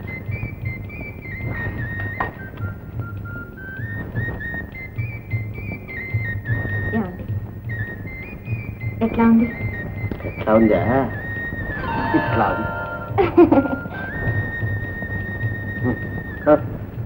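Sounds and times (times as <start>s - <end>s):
flute-like melody: 0.0s - 17.0s
low throbbing: 11.8s - 14.9s.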